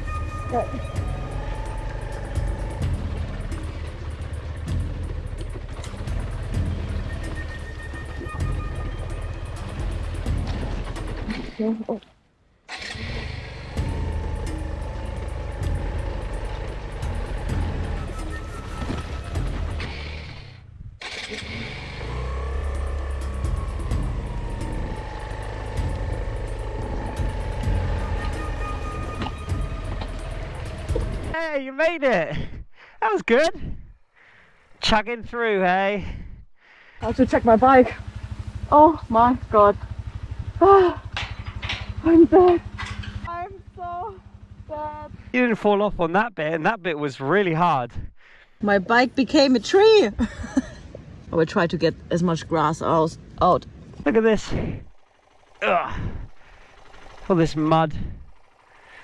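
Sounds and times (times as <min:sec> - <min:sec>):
background music: 0:00.0 - 0:11.8, 0:12.7 - 0:20.3, 0:21.1 - 0:31.4
motorcycle engine chugging: 0:00.0 - 0:11.9, 0:12.7 - 0:31.4, 0:37.0 - 0:59.0.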